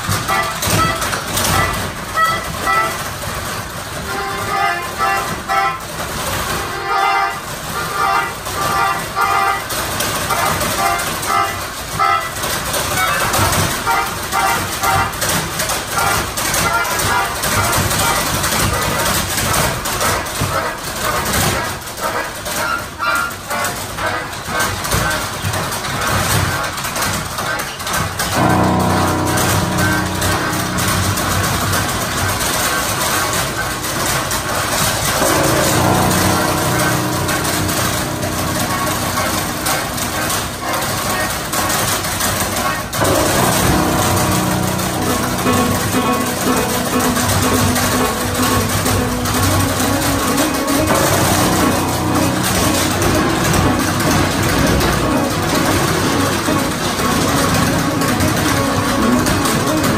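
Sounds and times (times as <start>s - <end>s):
melodica chords: 0.0s - 59.9s
tap dancing on wooden board: 7.9s - 59.9s.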